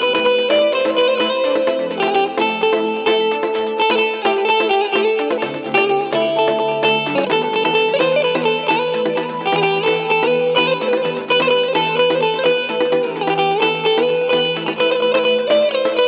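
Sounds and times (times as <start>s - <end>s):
plucked long-necked lute: 0.0s - 16.0s.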